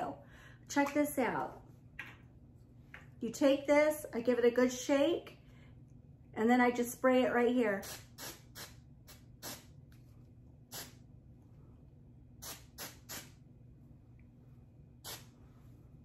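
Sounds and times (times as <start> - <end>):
hair spray hissing: 7.8 - 9.7, 10.7 - 11.0, 12.4 - 13.4, 15.0 - 15.4.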